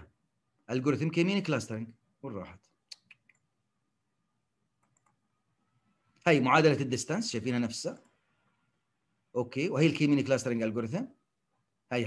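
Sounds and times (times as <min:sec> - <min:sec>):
computer mouse clicks: 0:02.9 - 0:03.5, 0:04.8 - 0:05.2.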